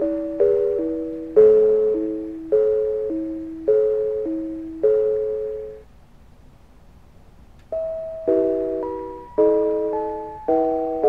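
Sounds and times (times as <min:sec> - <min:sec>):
small brass bells playing a tune: 0:07.8 - 0:11.0.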